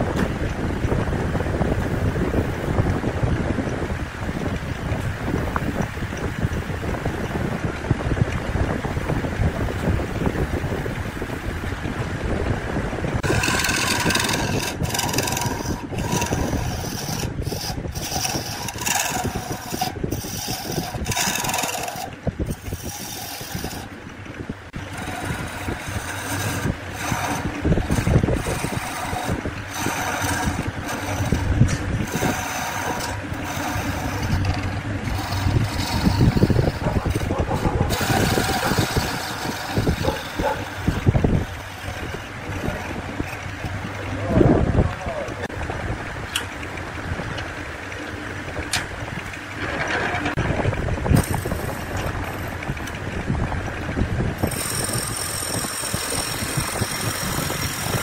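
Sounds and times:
wood lathe humming: 0.0 - 58.0
lathe tool scraping wood: 13.1 - 44.4, 47.5 - 58.0.

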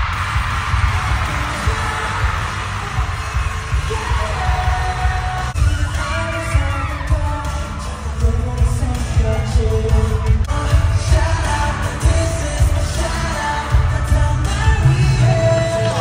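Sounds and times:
deep pulsing bass beat: 0.0 - 5.9
crowd noise: 0.0 - 16.0
pop concert music: 0.0 - 16.0
person singing: 0.8 - 16.0.

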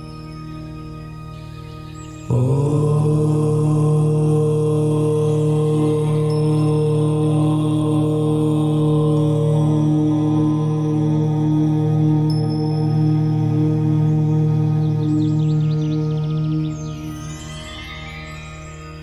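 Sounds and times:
deep chanted om: 0.0 - 19.0
soft background music: 0.0 - 19.0.

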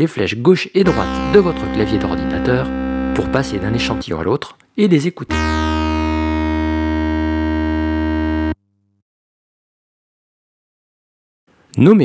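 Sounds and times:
sustained synthesizer tone: 0.9 - 4.0, 5.3 - 8.6.

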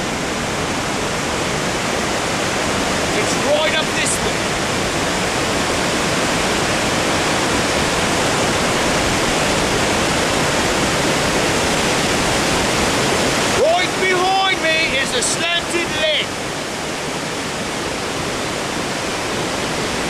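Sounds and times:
waterfall and river rushing: 0.0 - 20.0.

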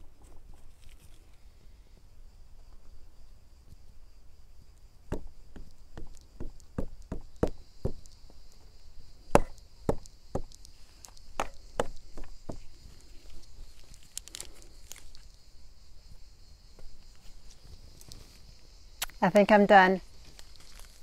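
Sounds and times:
high-pitched insect drone: 0.8 - 21.0
sharp taps and knocks: 5.1 - 8.2, 9.3 - 10.7, 11.3 - 12.7.

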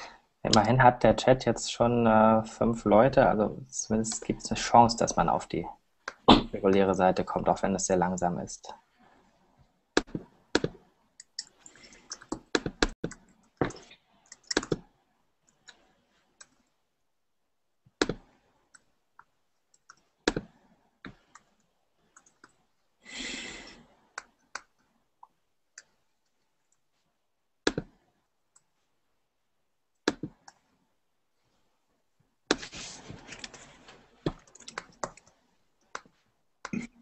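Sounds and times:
keyboard and mouse clicks: 10.0 - 14.9, 18.0 - 22.6, 24.2 - 26.0, 27.7 - 28.7, 30.0 - 30.7, 33.4 - 36.9.

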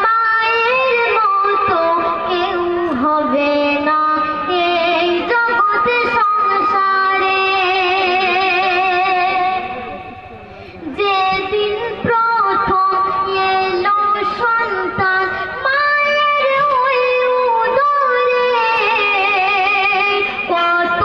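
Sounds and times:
boy singing into a microphone: 0.0 - 10.0, 10.6 - 21.0.

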